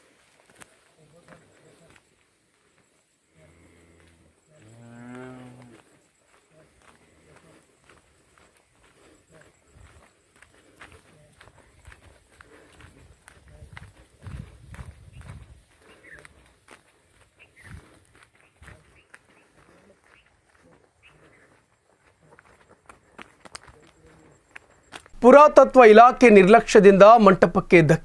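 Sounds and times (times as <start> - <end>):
footsteps on dirt path: 0.0 - 27.9
cow mooing: 3.4 - 5.8.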